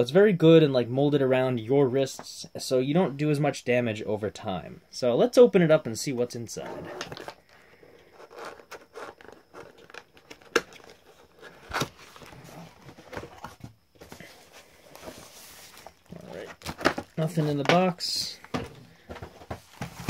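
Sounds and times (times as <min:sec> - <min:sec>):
tissue paper rustling: 0:14.2 - 0:17.6
cardboard scraping and knocking: 0:18.5 - 0:20.0.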